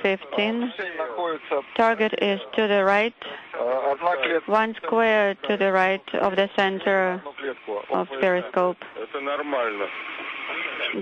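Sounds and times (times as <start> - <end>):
voice over radio: 0.0 - 5.9, 6.6 - 11.0
radio hiss: 0.0 - 11.0.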